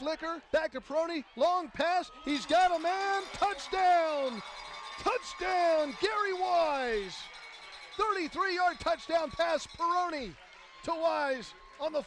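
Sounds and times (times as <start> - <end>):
sports announcer shouting: 0.0 - 7.3, 8.0 - 12.0.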